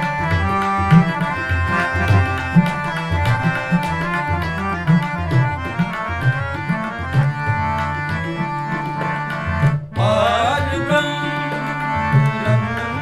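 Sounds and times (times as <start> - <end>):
harmonium melody: 0.0 - 13.0
tabla beat: 0.0 - 13.0.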